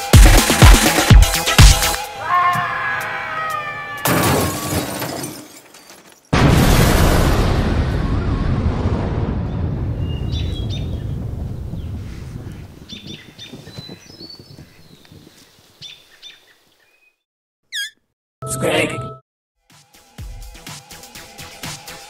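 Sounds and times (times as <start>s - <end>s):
explosion rumble and debris: 6.3s - 12.7s.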